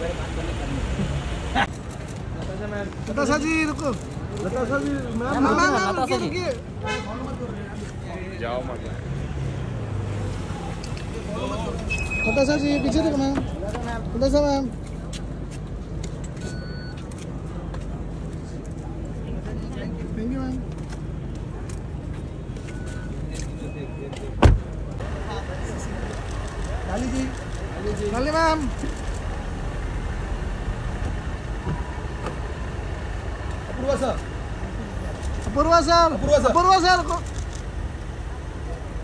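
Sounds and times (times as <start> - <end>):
general outdoor noise: 0.0 - 39.0
idling cars rumbling: 0.0 - 39.0
street traffic: 0.0 - 39.0
short electronic beep: 11.9 - 12.9, 16.4 - 17.0.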